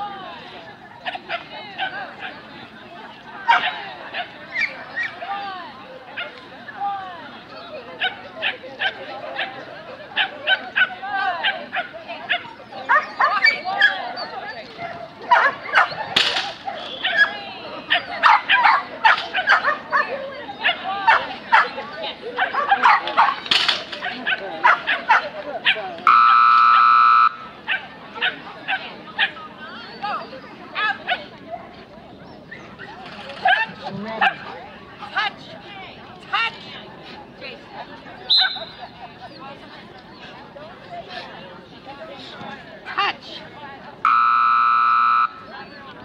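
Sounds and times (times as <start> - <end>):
dog yipping: 16.7 - 21.7.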